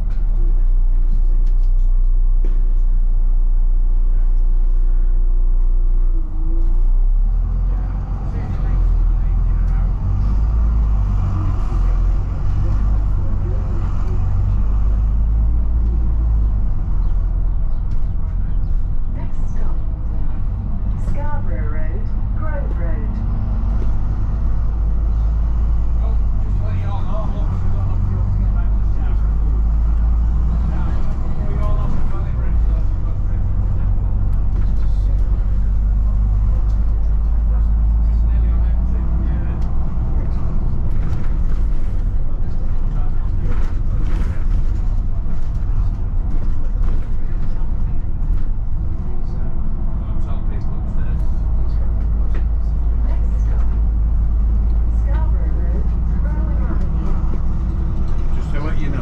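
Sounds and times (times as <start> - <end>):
bus body rattles and clicks: 0.0 - 59.0
bus engine rumble: 0.0 - 59.0.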